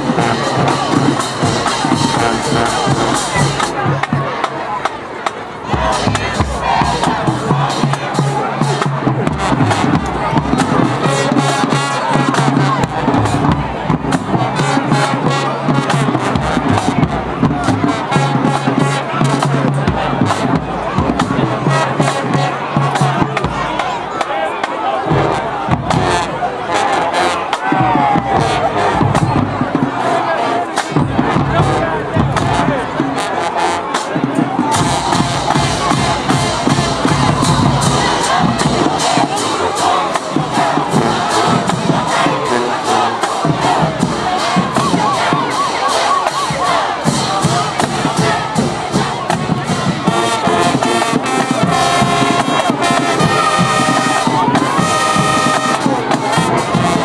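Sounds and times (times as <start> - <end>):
crowd cheering and shouting: 0.0 - 57.0
marching band playing: 0.0 - 57.0.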